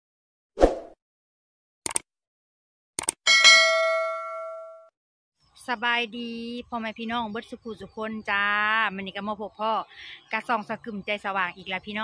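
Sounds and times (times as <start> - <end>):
bright bell ding: 3.3 - 4.9.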